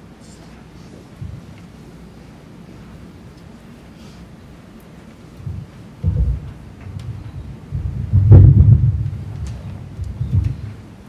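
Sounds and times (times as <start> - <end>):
microphone handling thumps: 1.2 - 1.5, 5.4 - 10.8.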